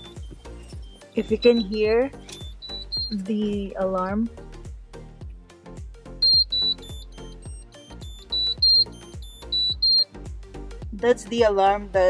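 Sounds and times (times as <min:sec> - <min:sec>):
short high alarm beeps: 0:00.0 - 0:03.2, 0:06.2 - 0:10.1
background music with steady beat: 0:00.0 - 0:12.0.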